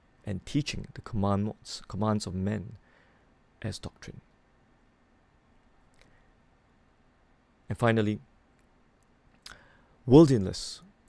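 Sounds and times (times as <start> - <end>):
faint breath: 2.8 - 3.4, 9.5 - 10.0
mouth click: 8.6 - 9.7.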